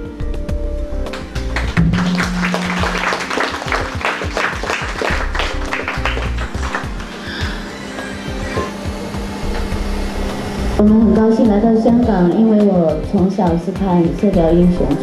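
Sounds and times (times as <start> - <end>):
audience clapping: 1.1 - 7.6
band final chord ringing: 1.2 - 6.6.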